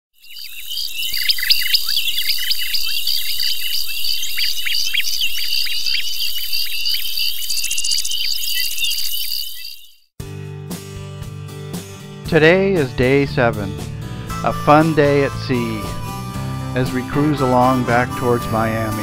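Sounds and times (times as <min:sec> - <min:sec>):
descending bird chirps: 0:00.2 - 0:10.1
insects trilling: 0:00.2 - 0:10.1.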